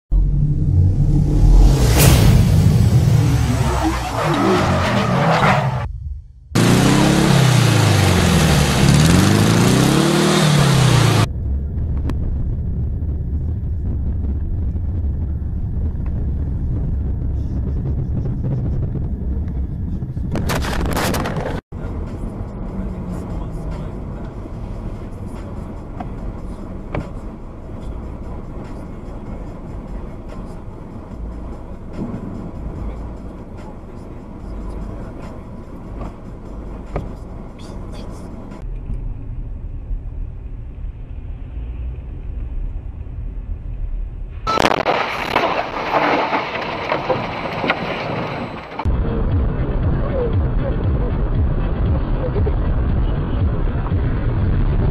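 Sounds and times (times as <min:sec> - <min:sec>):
engine and road rumble: 0:00.1 - 0:54.9
loud noisy bursts: 0:06.6 - 0:11.3.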